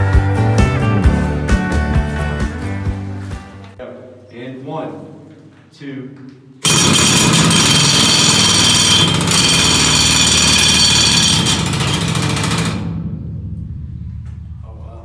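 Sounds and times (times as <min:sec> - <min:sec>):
pneumatic rock drill hammering: 0:06.6 - 0:13.0.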